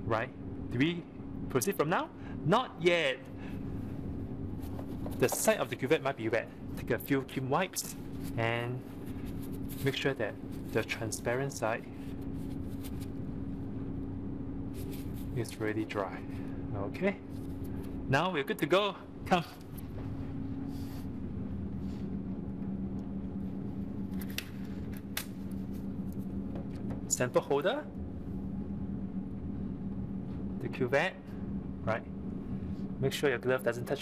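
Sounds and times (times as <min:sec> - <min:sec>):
steady mechanical hum: 0:00.0 - 0:34.0
tissue rubbing on glass: 0:04.5 - 0:05.7, 0:07.8 - 0:11.3, 0:11.9 - 0:13.3, 0:14.7 - 0:15.6.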